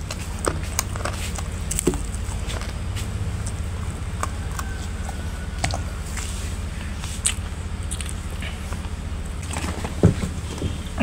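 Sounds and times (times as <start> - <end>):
person chewing food: 0.0 - 11.0
steady low rumble: 0.0 - 11.0.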